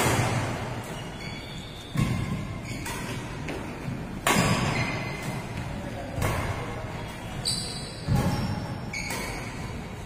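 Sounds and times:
racket hitting shuttlecock: 0:00.0 - 0:01.1, 0:01.9 - 0:06.7, 0:08.0 - 0:09.9
shoe squeak on court: 0:00.8 - 0:03.2, 0:07.4 - 0:09.6.

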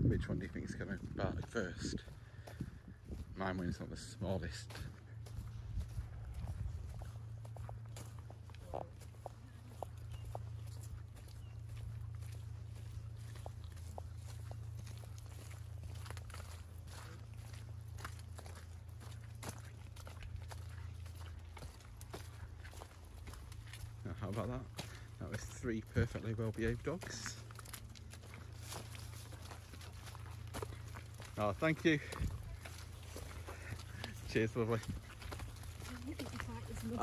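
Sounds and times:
footsteps on muddy path: 0:00.0 - 0:37.0
low rumble: 0:00.0 - 0:37.0.

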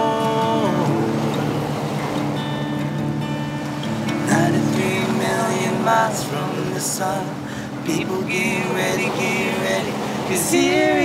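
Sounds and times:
man singing: 0:00.0 - 0:01.3, 0:04.2 - 0:11.0
acoustic guitar strumming: 0:00.0 - 0:11.0.

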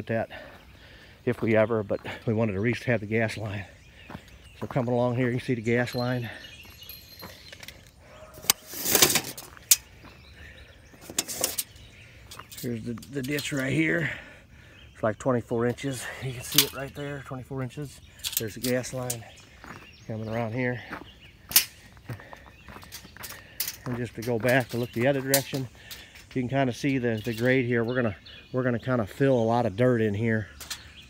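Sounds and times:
man talking: 0:00.0 - 0:00.5, 0:01.2 - 0:03.7, 0:04.6 - 0:06.4, 0:12.6 - 0:14.3, 0:15.0 - 0:19.4, 0:20.1 - 0:21.0, 0:23.8 - 0:30.6
birds chirping: 0:00.0 - 0:31.0
footsteps scuffing on dirt: 0:00.3 - 0:14.2, 0:15.7 - 0:26.7.

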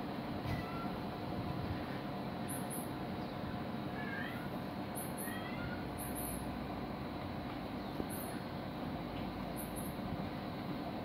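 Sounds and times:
cat meowing faintly: 0:00.4 - 0:01.0, 0:04.0 - 0:04.6, 0:05.2 - 0:05.9.

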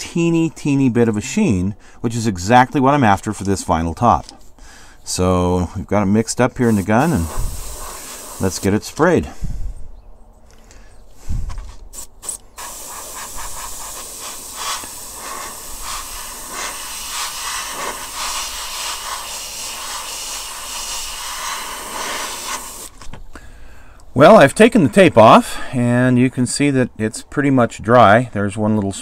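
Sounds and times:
airbrush hissing: 0:06.6 - 0:09.4, 0:11.9 - 0:23.0.

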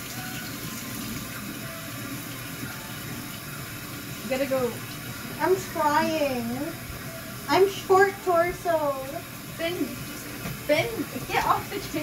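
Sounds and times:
faucet water splashing into sink: 0:00.0 - 0:12.0.

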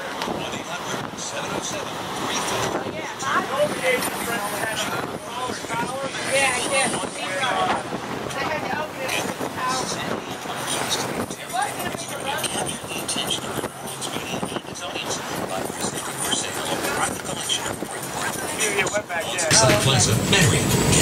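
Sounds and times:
indistinct voices: 0:00.0 - 0:21.0
steady rushing noise: 0:00.0 - 0:21.0.

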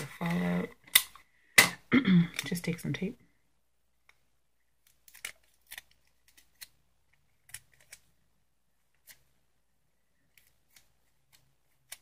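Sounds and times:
adhesive tape crackling: 0:04.8 - 0:06.8.

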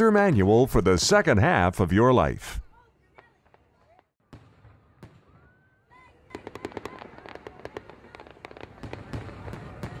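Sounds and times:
fireworks crackling and banging: 0:03.0 - 0:10.0.

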